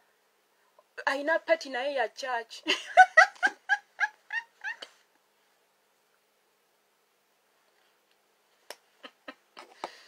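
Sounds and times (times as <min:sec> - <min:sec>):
woman laughing: 0:02.6 - 0:05.0, 0:09.0 - 0:09.6.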